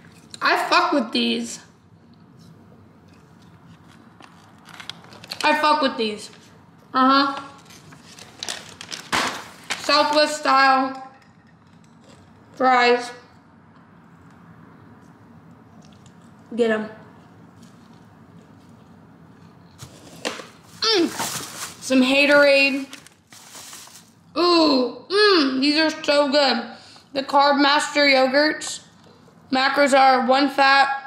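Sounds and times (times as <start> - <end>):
chewing food: 11.5 - 12.6, 15.0 - 16.5, 17.1 - 20.2
person chewing: 11.6 - 12.6, 15.7 - 16.4.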